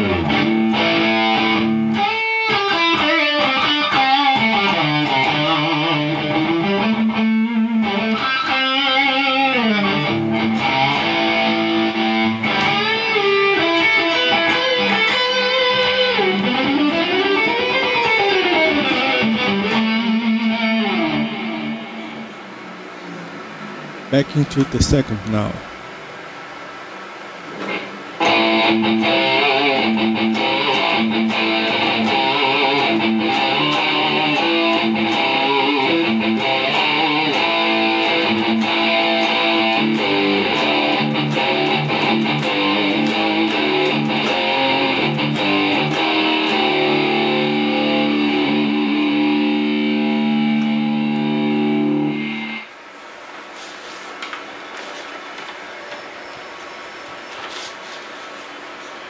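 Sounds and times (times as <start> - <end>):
backing track: 0.0 - 22.6, 23.9 - 25.8, 27.7 - 52.7
distorted electric guitar lead: 0.0 - 22.7, 27.6 - 52.9.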